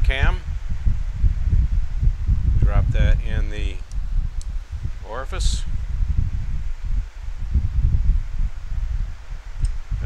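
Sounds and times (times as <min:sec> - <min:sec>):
wind buffeting microphone: 0:00.0 - 0:10.0
faint click: 0:09.6 - 0:09.8.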